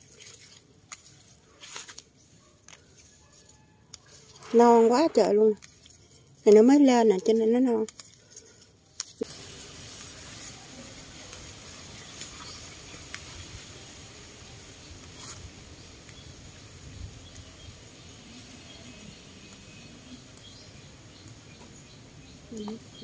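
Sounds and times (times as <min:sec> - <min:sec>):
faint outdoor background: 0:00.0 - 0:23.0
leafy stems rustling: 0:00.0 - 0:23.0
stems snapping: 0:00.4 - 0:10.5, 0:12.1 - 0:13.4, 0:17.3 - 0:17.5, 0:19.4 - 0:20.6.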